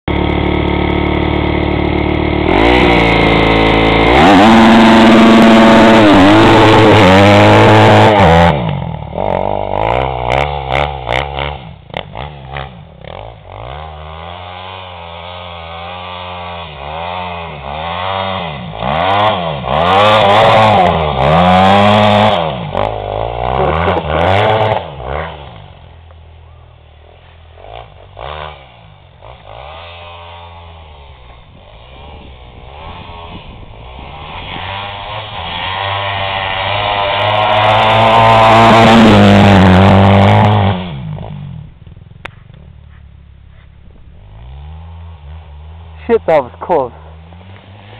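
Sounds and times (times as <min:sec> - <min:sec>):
dirt bike engine revving: 0:00.0 - 0:47.9.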